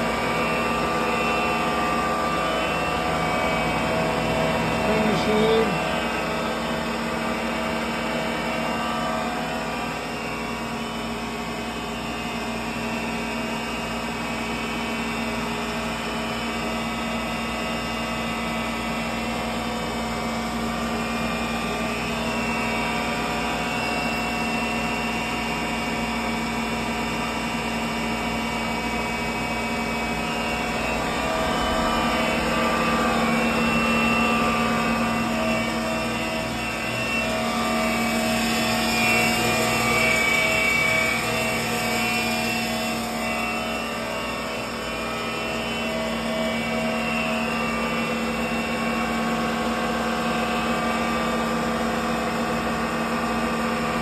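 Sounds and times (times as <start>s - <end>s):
lathe mechanical whine: 0.0s - 54.0s.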